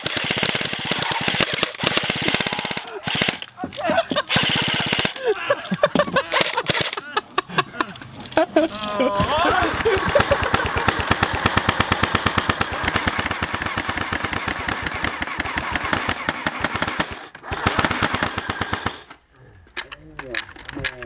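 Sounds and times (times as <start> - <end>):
airsoft guns firing rapid bursts: 0.0 - 7.0, 9.4 - 19.1
scattered clicks: 0.0 - 7.1, 7.8 - 17.1, 19.0 - 21.0.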